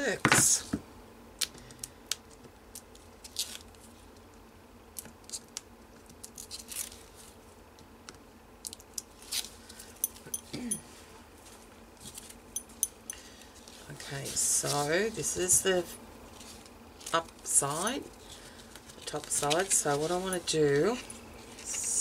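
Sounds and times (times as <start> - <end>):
plastic sleeve crinkling: 16.2 - 22.0.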